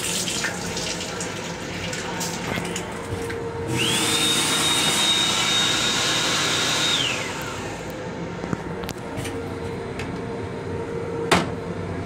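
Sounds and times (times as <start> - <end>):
hand dryer running: 0.0 - 8.5.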